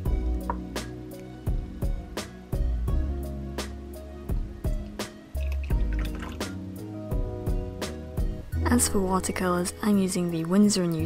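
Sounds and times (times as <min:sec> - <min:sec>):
music with steady beat: 0:00.0 - 0:09.1
water pouring into plastic cup: 0:05.4 - 0:06.6.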